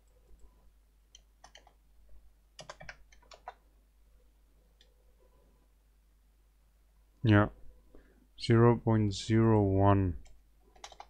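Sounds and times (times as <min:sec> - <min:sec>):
computer keyboard typing: 0:01.1 - 0:01.8, 0:02.6 - 0:03.6, 0:10.2 - 0:11.0.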